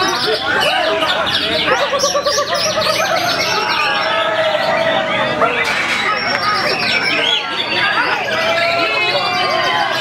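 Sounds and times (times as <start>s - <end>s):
birds singing in chorus: 0.0s - 10.0s.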